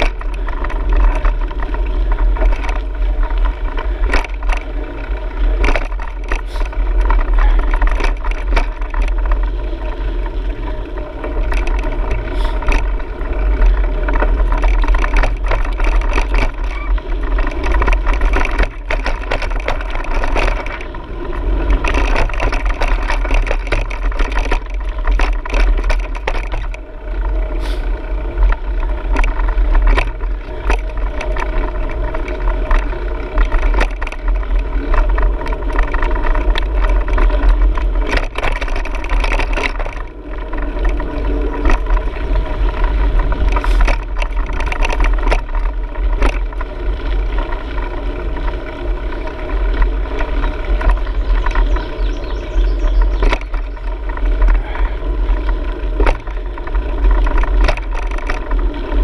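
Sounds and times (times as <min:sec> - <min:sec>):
low rumble of wind and jolting: 0:00.0 - 0:59.0
small rattles and clicks: 0:00.0 - 0:59.0
steady mechanical drone: 0:00.0 - 0:59.0.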